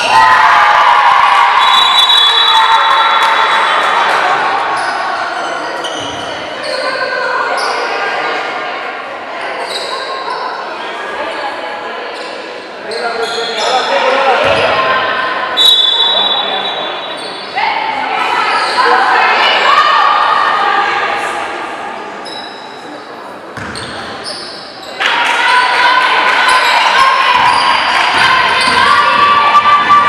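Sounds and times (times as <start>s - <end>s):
people calling out in gym: 0.0s - 8.6s, 9.2s - 23.2s, 23.8s - 30.0s
sneakers squeaking: 4.6s - 7.9s, 9.5s - 10.6s, 12.1s - 19.0s, 22.2s - 25.1s, 26.4s - 30.0s
ball bouncing on hardwood court: 23.6s - 24.1s.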